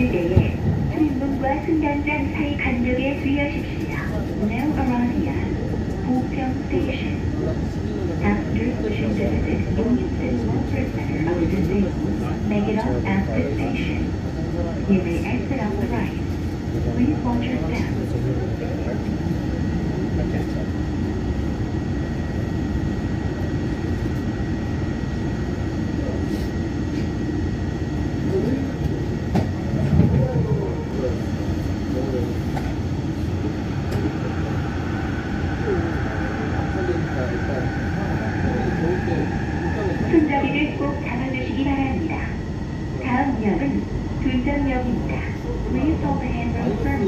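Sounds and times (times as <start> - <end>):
train running rumble and rattle: 0.0 - 47.0
train whine rising in pitch: 33.0 - 44.2.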